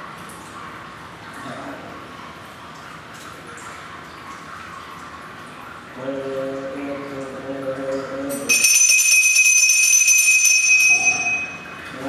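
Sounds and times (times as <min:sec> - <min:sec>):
hand bell ringing: 0:08.5 - 0:11.8.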